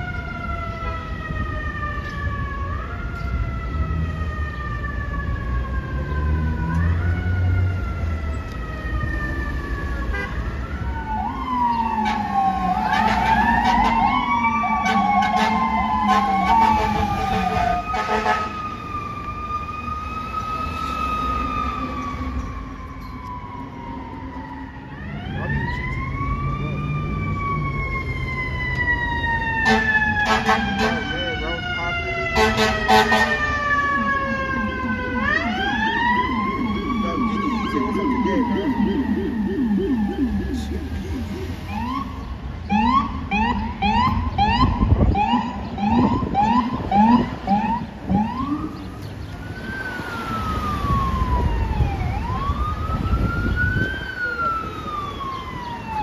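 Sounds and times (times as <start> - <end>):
emergency vehicle sirens: 0.0 - 56.0.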